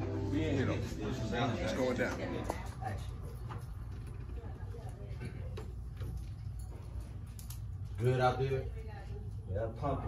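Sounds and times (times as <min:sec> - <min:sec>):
faint chatter of people: 0:00.0 - 0:10.0.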